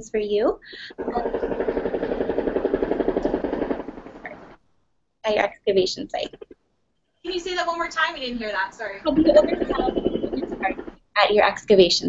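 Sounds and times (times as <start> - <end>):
machine pulsing rapidly: 0.6 - 4.6, 6.0 - 6.6, 7.3 - 11.2.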